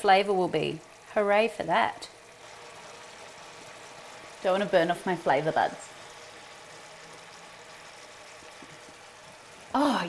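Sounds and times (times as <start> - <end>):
stock boiling and sizzling: 0.0 - 10.0.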